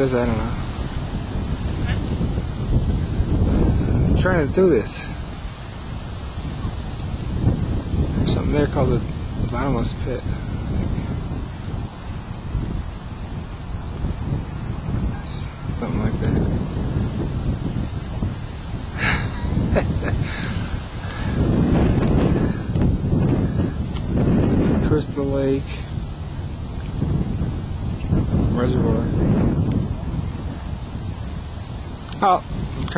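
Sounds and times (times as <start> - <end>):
wind buffeting microphone: 0.0 - 32.9.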